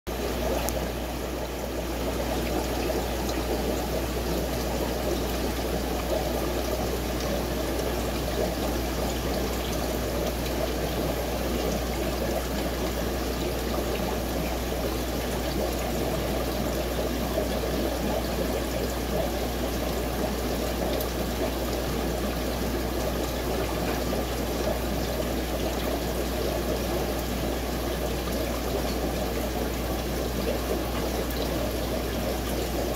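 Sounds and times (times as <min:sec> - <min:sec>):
aquarium filter bubbling: 0:00.1 - 0:32.9
low steady hum: 0:00.1 - 0:32.9.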